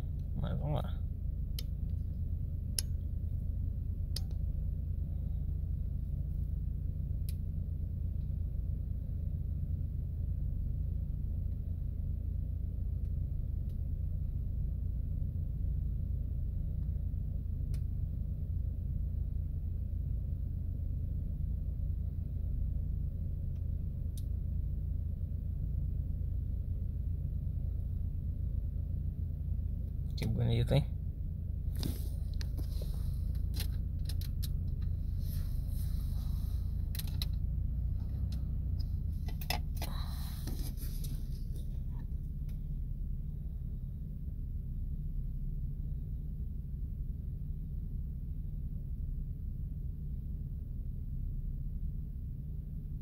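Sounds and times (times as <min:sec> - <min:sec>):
steady low rumble: 0:00.0 - 0:53.0.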